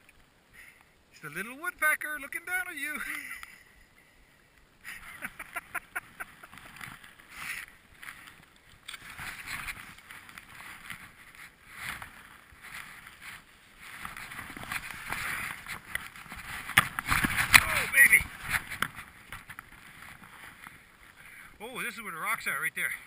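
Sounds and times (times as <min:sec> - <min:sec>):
skis swishing through powder snow: 0:04.8 - 0:21.2
ski knocks and scrapes: 0:05.5 - 0:20.8.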